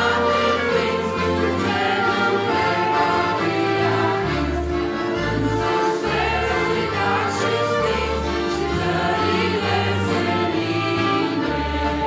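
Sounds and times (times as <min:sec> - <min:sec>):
accordion: 0:00.0 - 0:12.0
keyboard: 0:00.0 - 0:12.0
people singing a hymn: 0:00.0 - 0:12.0
saxophones: 0:00.0 - 0:12.0.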